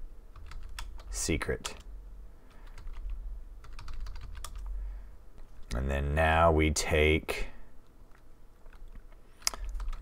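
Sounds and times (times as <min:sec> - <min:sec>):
computer keyboard typing: 0:00.3 - 0:01.9, 0:02.5 - 0:04.7, 0:08.6 - 0:10.0.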